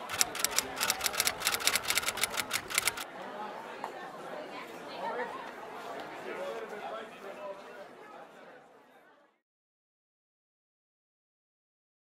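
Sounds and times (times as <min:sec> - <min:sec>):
typing key clicks: 0:00.0 - 0:03.0
murmur of background chatter: 0:00.0 - 0:09.4.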